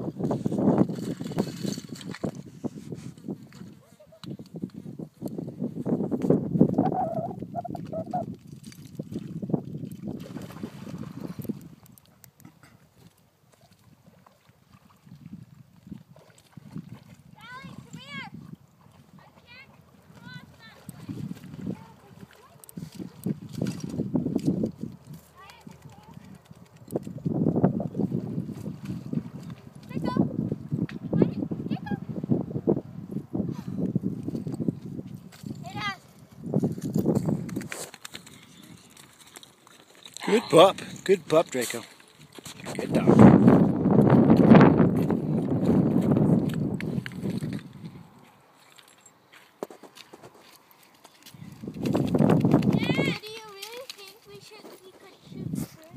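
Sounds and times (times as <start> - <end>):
wind buffeting microphone: 0.0 - 12.0, 14.7 - 39.1, 40.2 - 48.5, 51.2 - 55.9.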